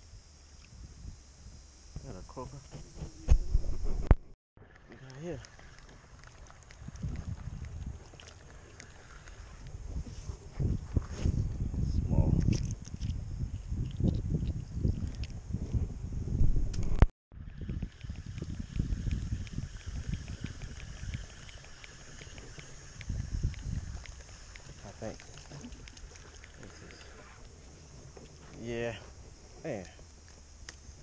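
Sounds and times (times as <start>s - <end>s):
microphone handling rustling: 2.6s - 4.4s, 9.7s - 17.1s.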